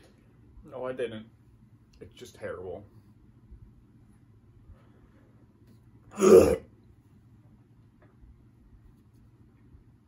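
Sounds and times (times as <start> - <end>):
man's loud vocal outburst: 6.1 - 6.7.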